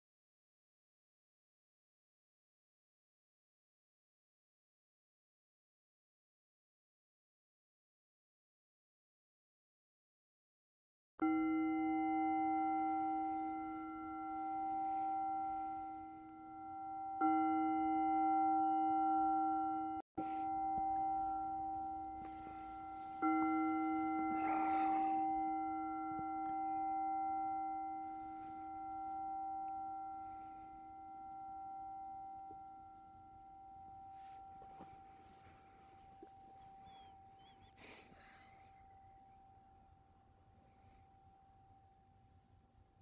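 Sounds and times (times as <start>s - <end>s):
singing bowl ringing: 11.2s - 43.0s.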